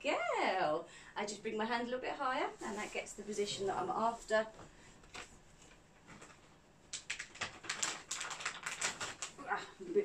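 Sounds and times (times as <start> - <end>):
clicks and rustles of handling: 4.6 - 9.4.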